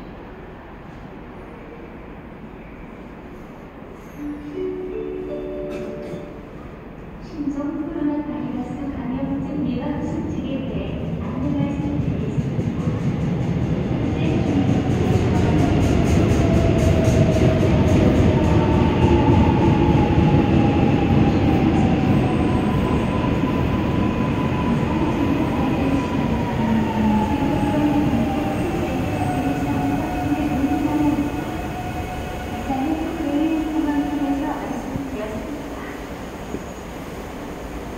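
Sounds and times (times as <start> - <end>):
train rumbling: 0.0 - 37.9.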